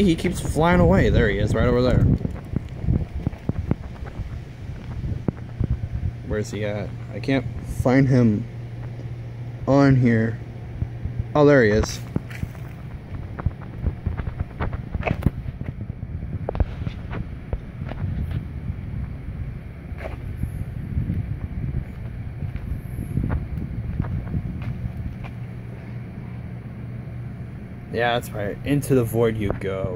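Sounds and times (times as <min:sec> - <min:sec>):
steady low hum: 0:00.0 - 0:29.9
uneven rumble: 0:00.0 - 0:29.9.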